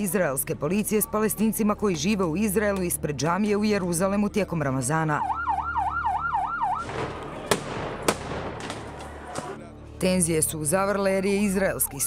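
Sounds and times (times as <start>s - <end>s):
ambulance siren yelping: 5.2s - 6.9s
sharp bangs: 6.7s - 9.6s.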